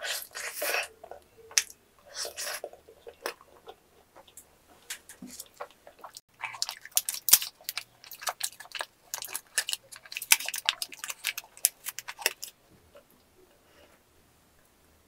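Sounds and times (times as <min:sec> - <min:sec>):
foil wrapper crinkling: 0:06.6 - 0:12.6.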